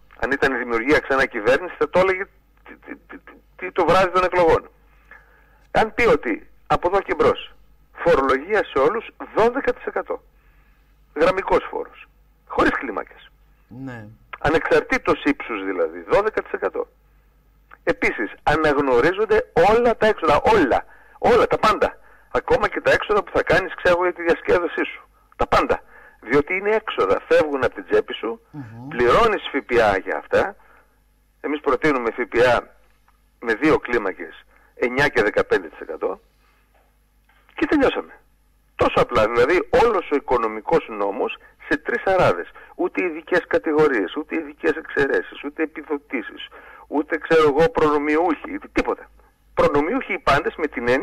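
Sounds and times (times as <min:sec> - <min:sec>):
person talking: 0:13.1 - 0:14.6, 0:28.6 - 0:29.9.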